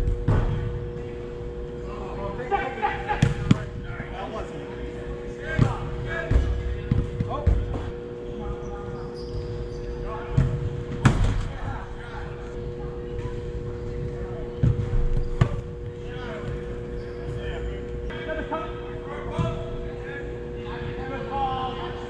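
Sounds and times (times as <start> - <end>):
steady hum: 0.0 - 22.0
soccer ball kicked and bouncing: 14.6 - 16.6.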